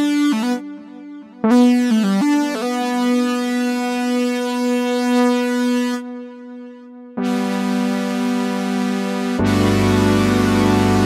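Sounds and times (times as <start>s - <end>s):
synthesizer notes: 0.0s - 11.0s.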